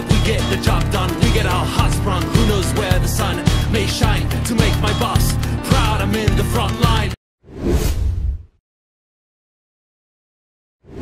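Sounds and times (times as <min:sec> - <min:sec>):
music: 0:00.0 - 0:07.2.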